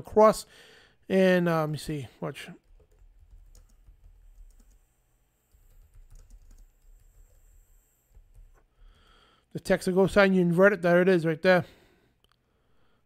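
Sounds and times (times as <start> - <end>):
faint keyboard typing: 2.6 - 8.7.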